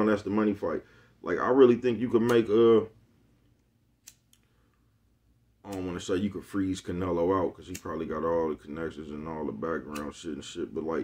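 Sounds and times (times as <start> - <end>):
lighter clicks: 4.0 - 4.5.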